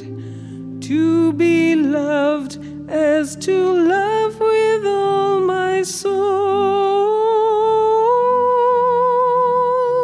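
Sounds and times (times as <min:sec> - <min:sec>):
person singing a hymn: 0:00.0 - 0:10.0.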